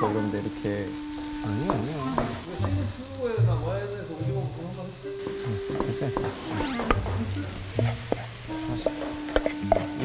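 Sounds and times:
stir-fry sizzling in a frying pan: 0.0 - 10.0
wooden spatula scraping: 5.2 - 10.0.

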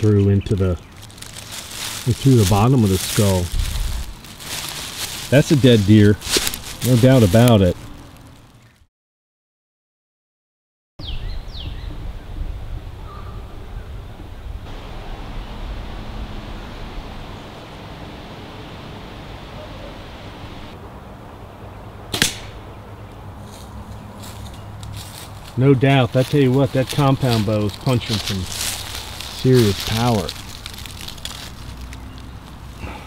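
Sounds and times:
outdoor background noise: 0.0 - 8.9, 11.0 - 33.0
bow string crack: 22.1 - 22.7.

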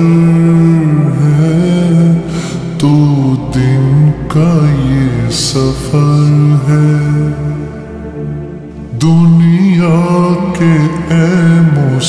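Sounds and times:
low steady hum: 0.0 - 12.0
person singing with reverb: 0.0 - 12.0.

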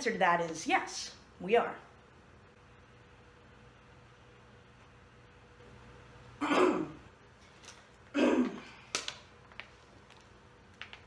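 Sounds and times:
woman clearing her throat: 6.4 - 7.1, 8.1 - 8.7.

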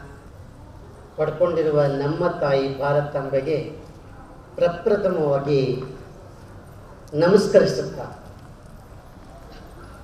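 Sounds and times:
faint open-air background noise: 0.0 - 10.0
man's amplified speech: 1.2 - 3.8, 4.6 - 6.0, 7.1 - 8.2.

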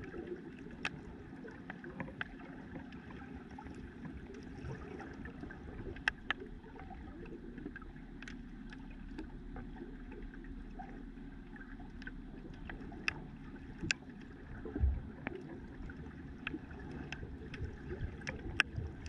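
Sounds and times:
underwater rush of moving water: 0.0 - 19.0
sharp underwater clicks: 0.6 - 2.4, 5.6 - 6.6, 7.5 - 9.7, 11.8 - 19.0.

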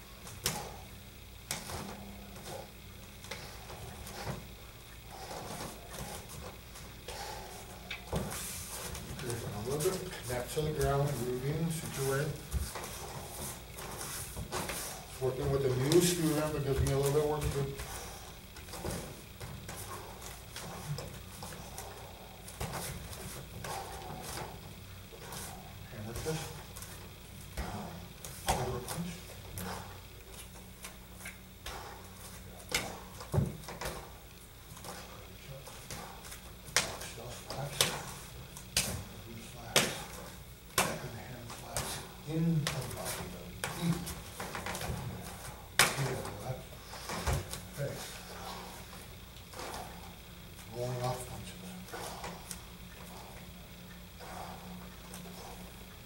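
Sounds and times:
bare feet shuffling on mats: 5.1 - 53.3
hands slapping bodies: 26.1 - 34.1, 34.7 - 47.7.

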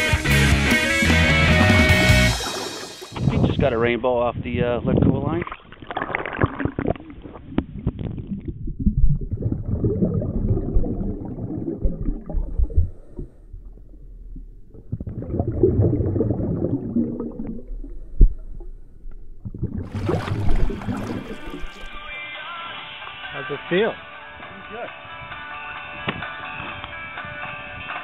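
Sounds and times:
muffled underwater rumbling: 3.0 - 22.1.

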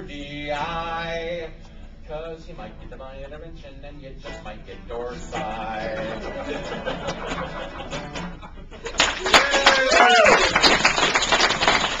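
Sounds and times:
audience applauding: 8.9 - 12.0
person cheering: 9.2 - 10.7.

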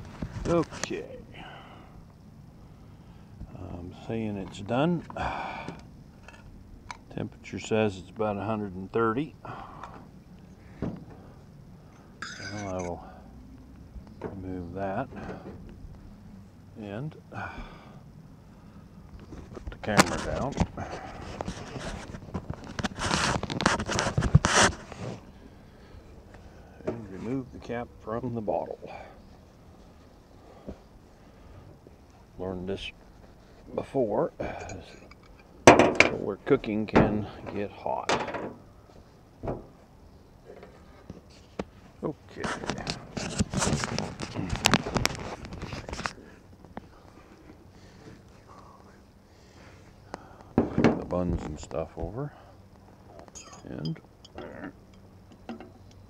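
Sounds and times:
camera handling rustling and scraping: 19.2 - 25.3, 42.4 - 48.4.

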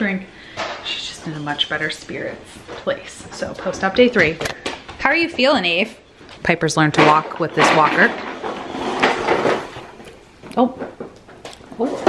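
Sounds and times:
plastic wheels rolling on hardwood: 6.9 - 12.0.

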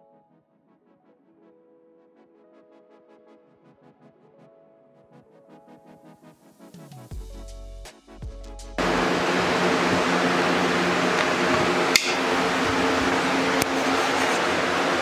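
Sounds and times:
background music: 0.0 - 13.7
woodshop machinery whirring: 8.8 - 15.0.

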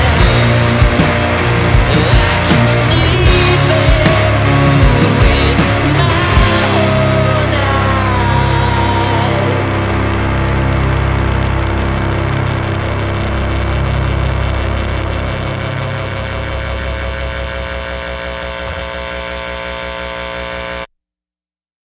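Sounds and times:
rock song chord ringing out: 0.0 - 20.7.

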